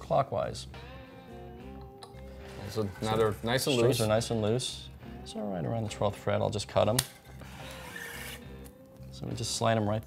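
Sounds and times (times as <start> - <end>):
guitar strings scraping metal: 2.4 - 4.2, 7.0 - 8.6.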